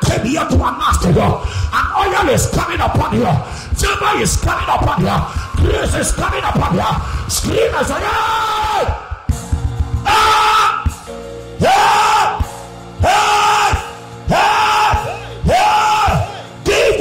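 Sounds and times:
music with low beat: 8.7 - 17.0
man crying out through microphone: 13.0 - 17.0.

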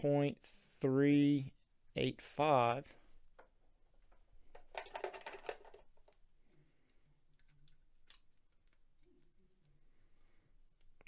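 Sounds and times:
light metallic clicks and rattles: 4.1 - 6.2.

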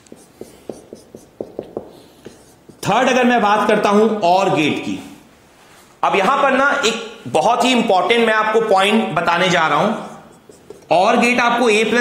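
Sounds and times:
marker pen writing on whiteboard: 0.0 - 3.7, 10.0 - 11.3.

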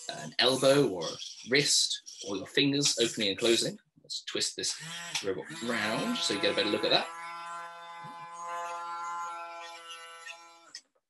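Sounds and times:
small electric motor humming: 4.8 - 10.8.

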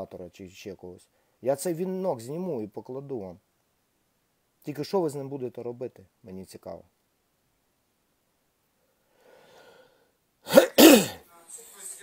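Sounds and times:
man clearing his throat: 10.5 - 11.2.

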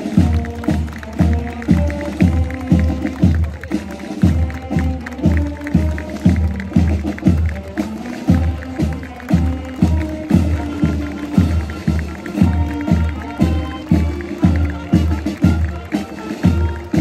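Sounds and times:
brass melody: 0.0 - 17.0.

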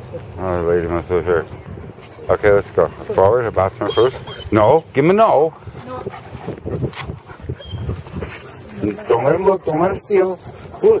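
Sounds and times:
footsteps on pavement: 5.7 - 11.0.

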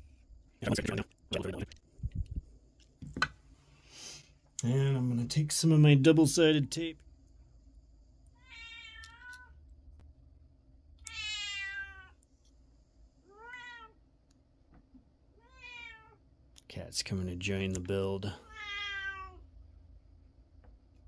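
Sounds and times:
cat meowing: 8.4 - 9.6, 11.0 - 12.2, 13.3 - 14.0, 15.4 - 16.2, 18.4 - 19.4.

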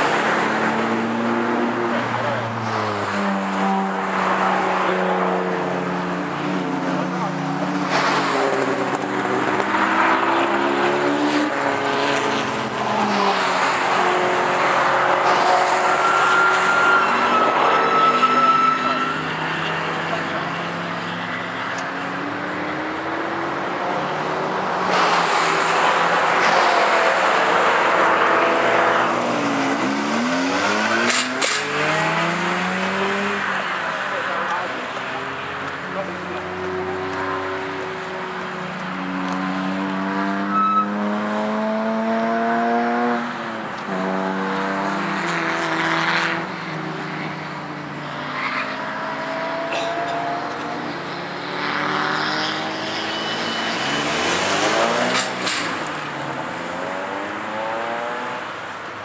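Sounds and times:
race car engines revving: 0.0 - 59.0
loud rushing noise: 24.6 - 34.2.

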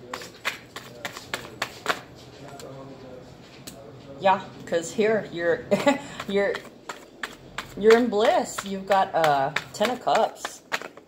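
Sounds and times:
cards snapping and slapping: 0.2 - 2.1, 9.6 - 11.0.

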